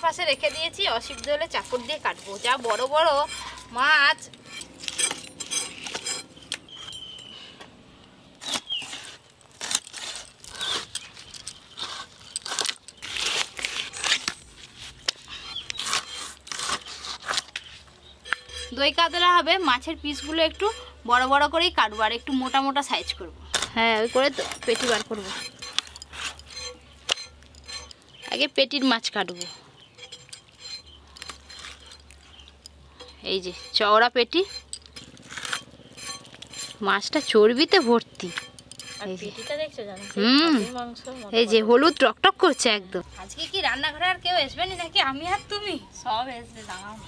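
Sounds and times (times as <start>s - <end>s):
blade scraping fish scales: 0.0s - 7.3s, 8.4s - 47.0s
low steady hum: 0.0s - 47.0s.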